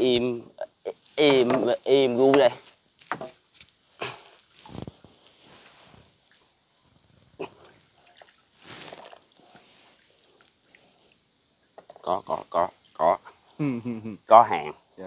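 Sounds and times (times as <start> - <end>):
night insects chirring: 0.0 - 15.0
water sloshing and splashing: 7.3 - 12.0.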